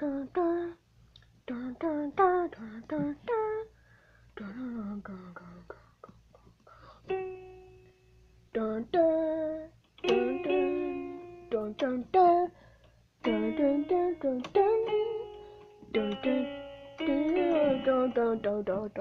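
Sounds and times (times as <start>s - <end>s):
electronic keyboard melody: 13.2s - 18.4s.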